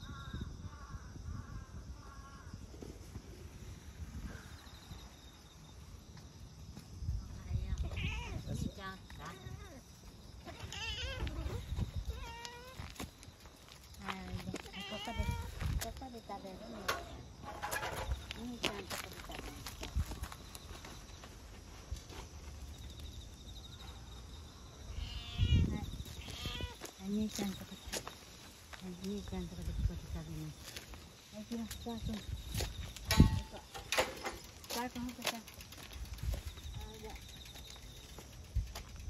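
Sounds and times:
cat meowing: 0:07.9 - 0:08.5, 0:14.7 - 0:15.5, 0:25.0 - 0:26.8.

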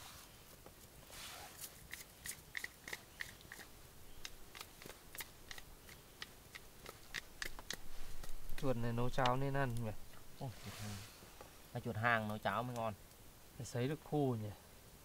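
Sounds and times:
campfire crackling and popping: 0:00.5 - 0:10.6, 0:11.2 - 0:14.3.

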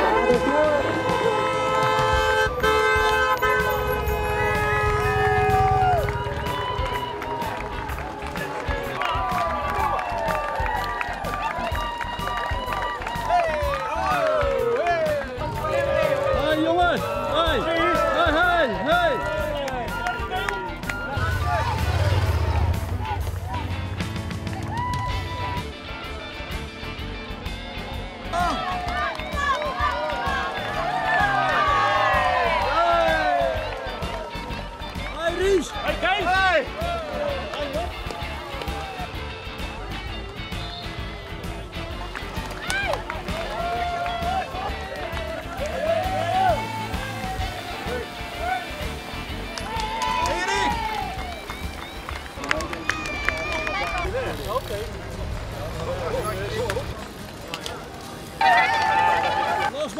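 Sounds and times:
many voices calling and shouting: 0:00.0 - 0:59.9
music: 0:00.0 - 0:59.9.

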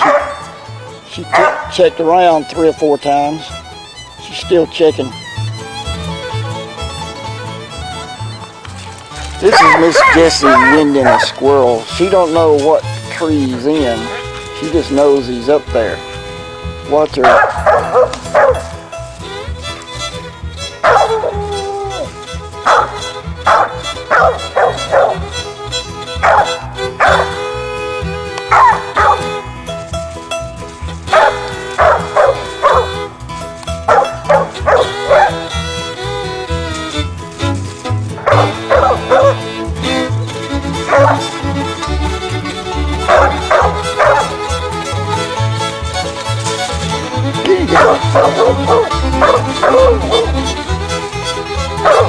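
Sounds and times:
dog barking: 0:00.0 - 0:00.4, 0:01.3 - 0:01.7, 0:09.5 - 0:11.4, 0:17.2 - 0:18.7, 0:20.8 - 0:21.4, 0:22.6 - 0:25.2, 0:26.2 - 0:27.4, 0:28.5 - 0:29.3, 0:31.1 - 0:33.0, 0:33.9 - 0:35.4, 0:38.2 - 0:39.4, 0:40.9 - 0:41.2, 0:43.1 - 0:44.4, 0:47.7 - 0:50.3, 0:51.8 - 0:52.0
background music: 0:00.0 - 0:52.0.

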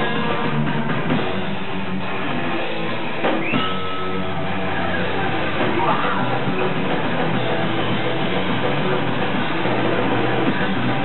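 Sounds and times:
loud electric guitars: 0:00.0 - 0:11.0
metal band playing live: 0:00.0 - 0:11.0.

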